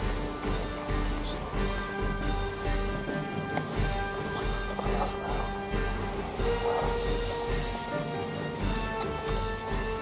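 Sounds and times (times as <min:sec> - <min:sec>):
background music with steady beat: 0:00.0 - 0:10.0
bright hiss: 0:00.0 - 0:10.0.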